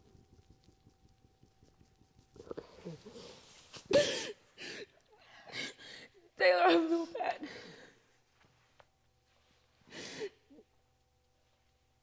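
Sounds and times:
steady low hum: 0:00.0 - 0:12.0
woman sobbing and whimpering: 0:02.8 - 0:07.9.

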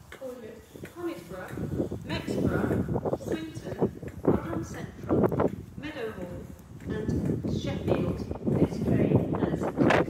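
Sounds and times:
recorded announcement voice: 0:00.2 - 0:05.1, 0:05.8 - 0:10.0.

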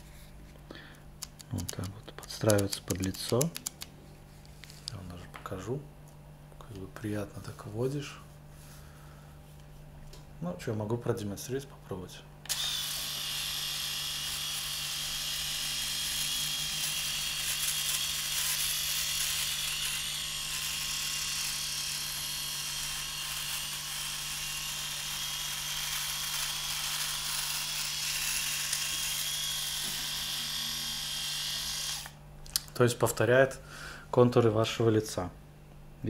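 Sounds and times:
electric shaver motor hum: 0:12.5 - 0:32.2.

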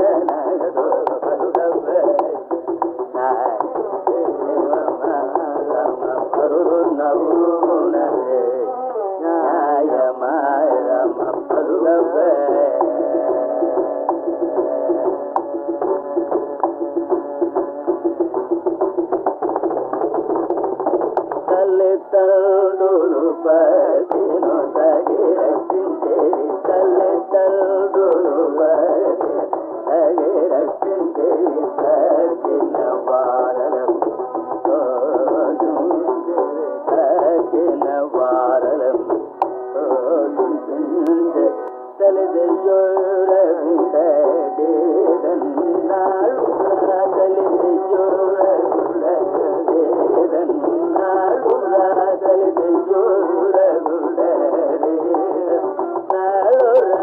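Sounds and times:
drum strokes: 0:12.8 - 0:21.6.

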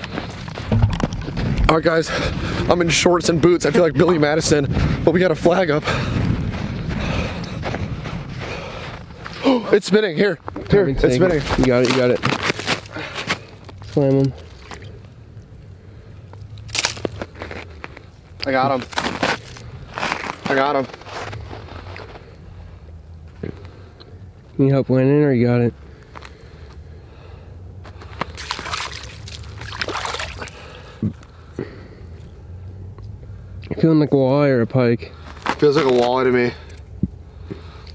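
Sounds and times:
low steady hum: 0:00.0 - 0:35.6
short thumps: 0:00.6 - 0:01.8
sharp crunch: 0:11.1 - 0:14.9, 0:16.4 - 0:22.3
fishing line hauled wet rustling: 0:11.2 - 0:15.1, 0:28.0 - 0:30.9
water trickling: 0:28.4 - 0:30.8.

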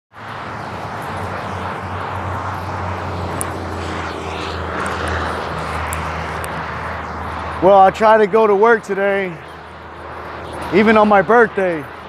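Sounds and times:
low engine drone: 0:00.1 - 0:12.0
outdoor noise: 0:00.1 - 0:12.0.

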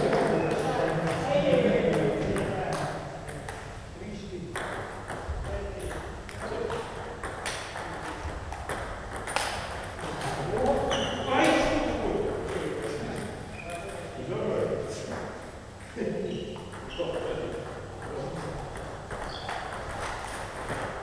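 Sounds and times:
people talking: 0:00.0 - 0:03.4, 0:10.0 - 0:15.3, 0:15.9 - 0:18.7
table tennis balls clicking: 0:04.5 - 0:11.7, 0:16.6 - 0:21.0.

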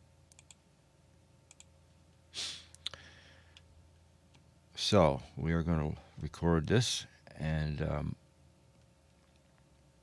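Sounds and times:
computer mouse clicks: 0:00.3 - 0:00.6, 0:01.5 - 0:01.7.

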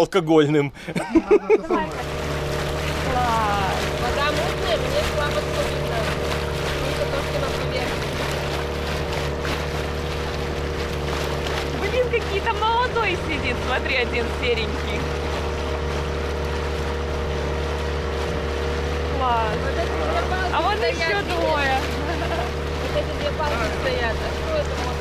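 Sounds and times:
boat engine droning: 0:00.8 - 0:25.0.

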